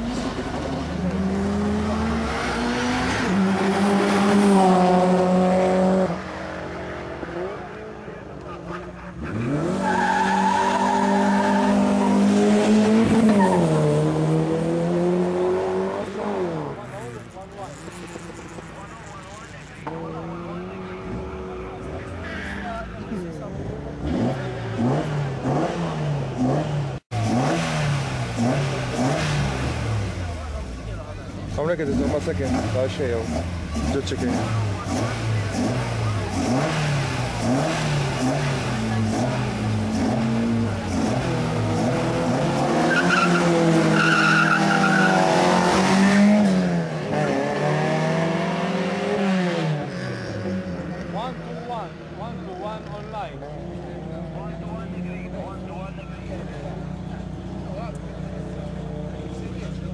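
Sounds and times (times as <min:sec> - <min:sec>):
race car engine at full throttle: 0:00.0 - 0:59.9.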